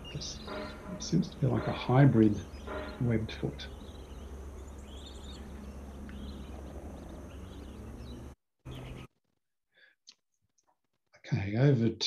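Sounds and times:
faint bird calls: 0:00.0 - 0:09.1.

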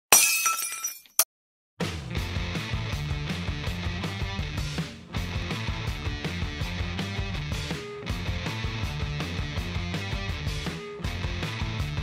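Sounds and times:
glass shattering: 0:00.1 - 0:01.3
music: 0:01.8 - 0:12.0.

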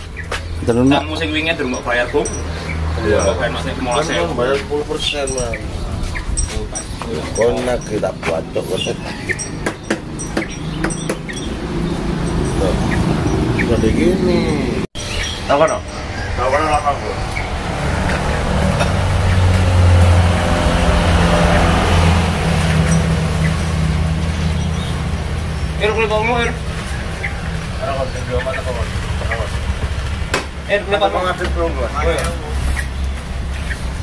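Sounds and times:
motorcycle engine running: 0:26.6 - 0:31.3.

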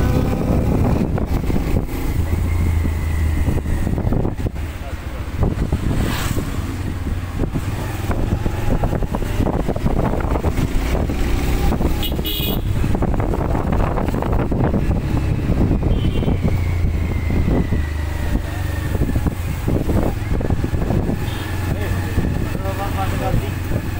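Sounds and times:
wind on microphone: 0:00.0 - 0:23.9
horn toot: 0:12.0 - 0:12.8, 0:15.8 - 0:16.5.

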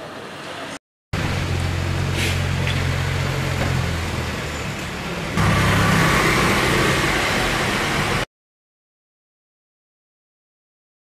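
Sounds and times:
vehicle engine running: 0:01.2 - 0:08.2
motorcycle riding on cobbles: 0:04.8 - 0:07.3.

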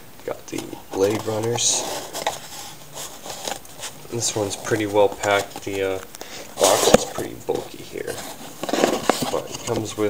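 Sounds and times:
cardboard box scraping and tapping: 0:00.5 - 0:05.9, 0:06.6 - 0:10.0.

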